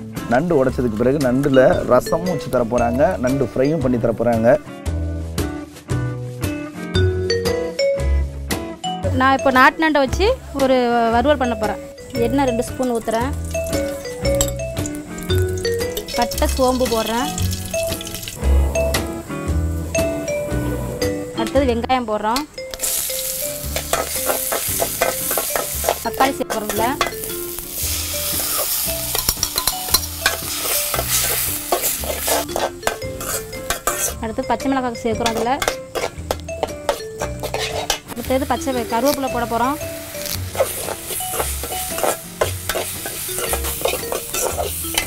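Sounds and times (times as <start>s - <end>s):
background music: 0.0s - 45.0s
instrumental melody of held notes: 1.0s - 4.1s, 6.9s - 45.0s
low bass: 16.3s - 21.9s.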